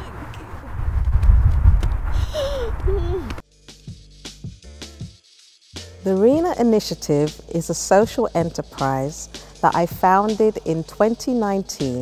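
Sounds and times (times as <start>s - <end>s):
person murmuring: 2.2s - 3.4s.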